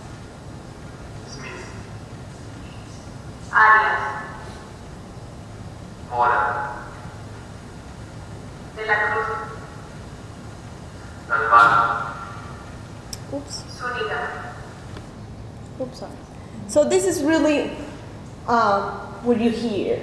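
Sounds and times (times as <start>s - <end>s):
recorded voice reading names: 1.2s - 1.8s, 2.6s - 4.7s, 6.1s - 7.0s, 8.8s - 9.6s, 11.2s - 12.5s, 13.2s - 14.7s, 15.7s - 20.0s.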